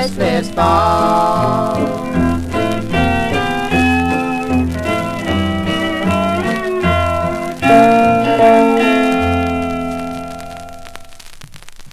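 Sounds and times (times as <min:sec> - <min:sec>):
string-band music with plucked strings: 0:00.0 - 0:11.1.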